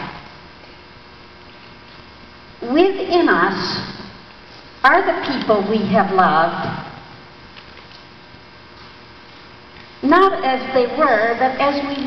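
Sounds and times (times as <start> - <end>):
background hiss: 0.0 - 12.0
electrical mains hum: 0.0 - 12.0.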